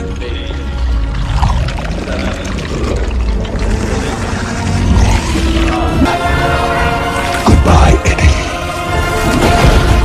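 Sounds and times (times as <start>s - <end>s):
wet goo spreading: 0.6s - 7.6s.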